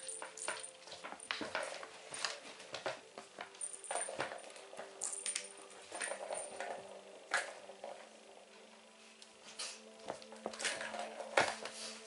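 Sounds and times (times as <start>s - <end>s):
light metallic jingling: 0.0s - 7.1s.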